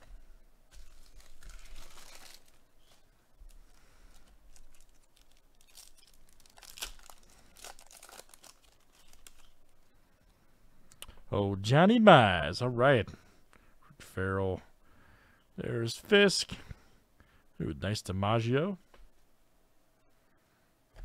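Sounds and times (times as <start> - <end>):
foil wrapper tearing and crinkling: 0.7 - 9.7.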